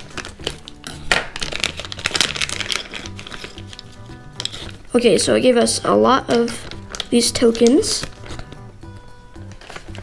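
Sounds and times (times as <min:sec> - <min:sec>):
scissors cutting foil: 0:00.0 - 0:04.8, 0:06.3 - 0:08.6
foil bag crinkling: 0:00.0 - 0:05.1, 0:06.0 - 0:08.7, 0:09.4 - 0:10.0
background music: 0:00.0 - 0:10.0.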